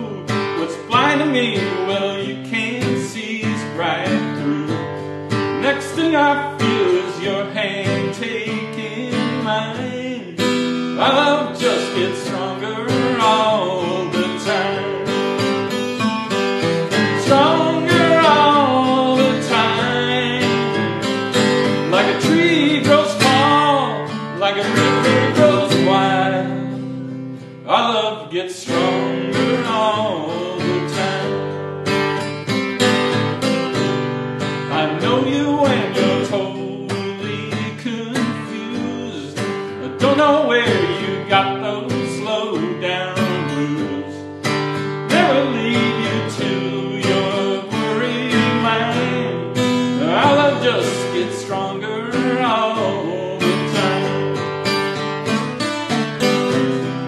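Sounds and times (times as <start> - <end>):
man singing: 0.0 - 32.2, 34.5 - 57.0
acoustic guitar accompaniment: 0.0 - 57.0.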